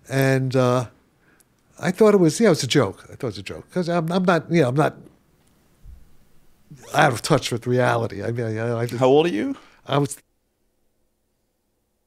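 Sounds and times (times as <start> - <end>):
man speaking: 0.0 - 1.0, 1.8 - 5.1, 6.7 - 10.2
faint low thump: 5.8 - 6.2.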